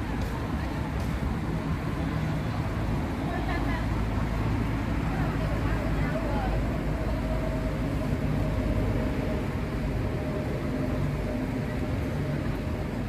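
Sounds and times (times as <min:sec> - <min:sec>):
faint indistinct voices: 0:00.0 - 0:13.0
low rumble of city traffic: 0:00.0 - 0:13.0.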